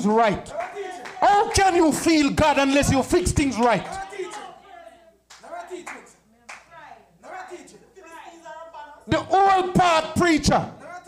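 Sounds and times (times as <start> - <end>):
sermon speech: 0.0 - 6.5, 7.2 - 11.0
sharp claps: 0.5 - 2.2, 3.3 - 4.5, 5.3 - 6.8.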